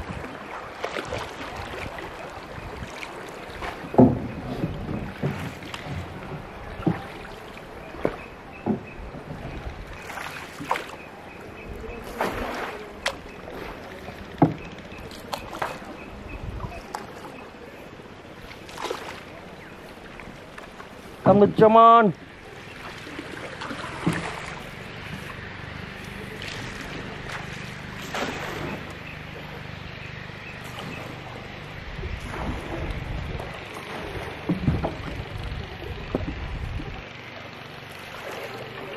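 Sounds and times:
paddle knocking wooden boat: 0.0s - 38.9s
paddle splashing water: 0.0s - 38.9s.

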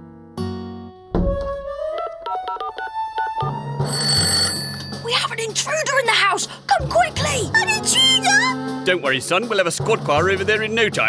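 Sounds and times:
cartoon music with plucked notes: 1.2s - 5.6s
telephone ringing: 2.3s - 5.1s.

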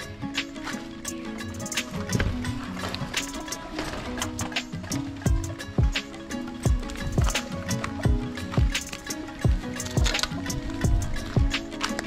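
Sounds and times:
background music held notes: 0.0s - 12.0s.

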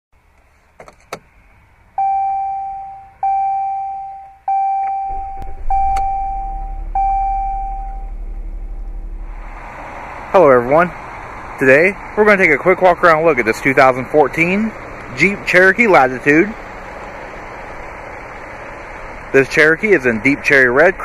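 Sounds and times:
dashboard chimes: 2.0s - 8.8s
car engine idling: 4.1s - 21.0s
clicks: 4.8s - 6.8s.

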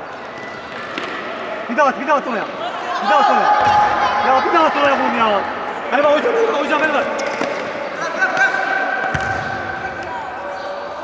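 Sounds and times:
spectators' voices: 0.0s - 11.0s
ball kick thump: 9.1s - 9.6s.

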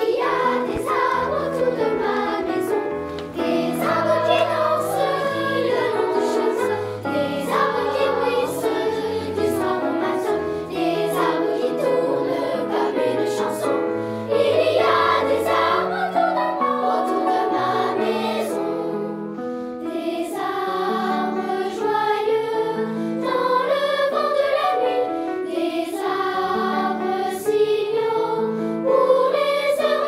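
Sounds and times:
children's choir singing: 0.0s - 30.0s
piano accompaniment: 0.0s - 30.0s.

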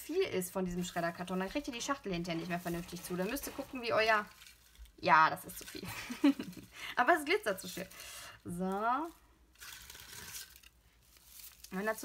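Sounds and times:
shredded paper filler crinkling: 0.0s - 12.0s.

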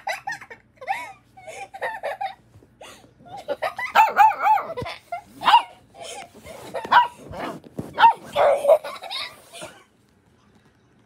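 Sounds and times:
puppy barking: 3.8s - 4.8s, 5.4s - 5.8s, 6.8s - 9.2s.

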